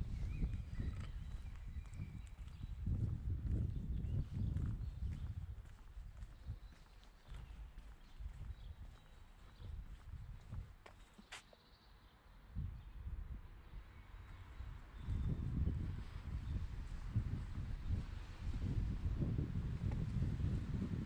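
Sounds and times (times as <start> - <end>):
wind buffeting microphone: 0.0 - 10.8, 12.5 - 21.0
footsteps walking: 4.6 - 11.5.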